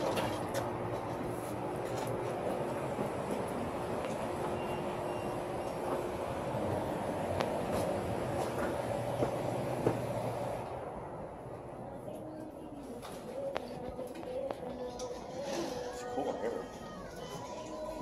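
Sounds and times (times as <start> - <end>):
cart wheels rolling on concrete: 0.0 - 10.7.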